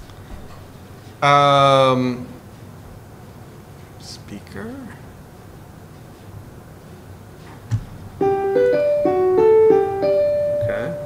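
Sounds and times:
electronic keyboard melody: 8.2 - 11.0.

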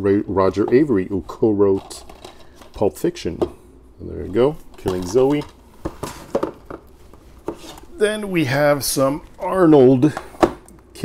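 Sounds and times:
plastic cases clicking and knocking: 4.7 - 6.9.

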